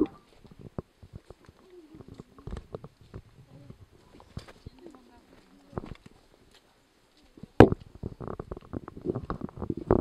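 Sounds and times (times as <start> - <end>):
faint voices: 1.3 - 8.2.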